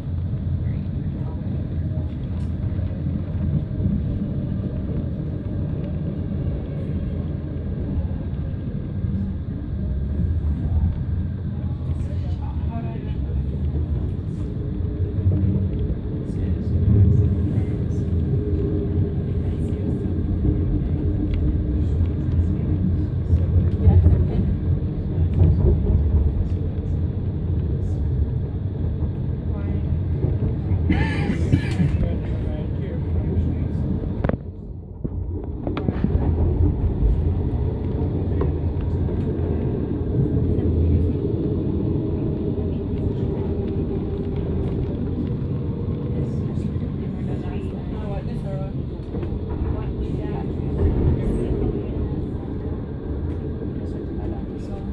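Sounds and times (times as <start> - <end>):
train rumble inside carriage: 0.0 - 54.9.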